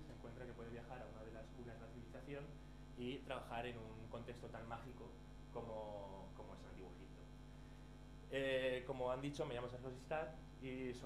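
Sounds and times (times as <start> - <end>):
man speaking: 0.0 - 7.4, 8.3 - 11.0
low electrical mains hum: 0.0 - 11.0.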